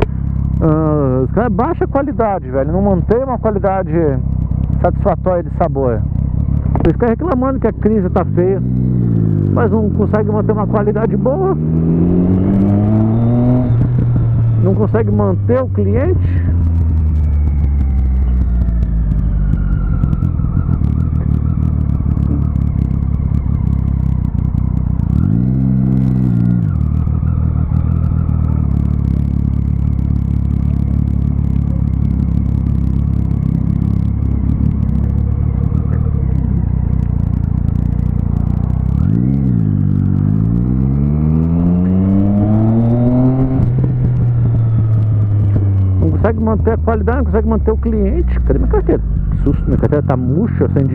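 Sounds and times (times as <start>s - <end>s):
motorcycle engine running: 0.0s - 50.9s.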